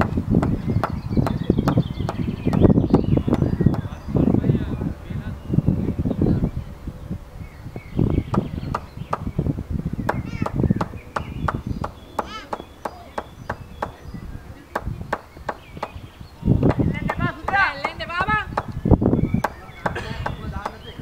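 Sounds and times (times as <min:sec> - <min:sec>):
low wind gusts: 0:00.0 - 0:21.0.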